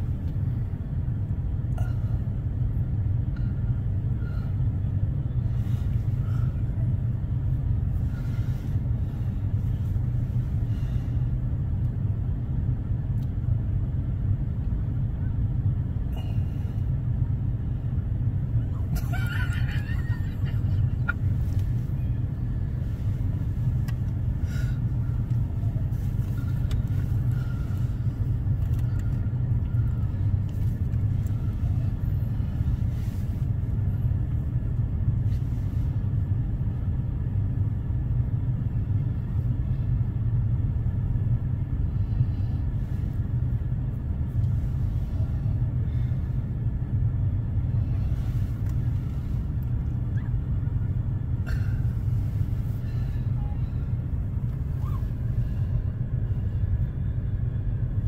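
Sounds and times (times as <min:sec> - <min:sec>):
steady low rumble: 0:00.0 - 0:58.0.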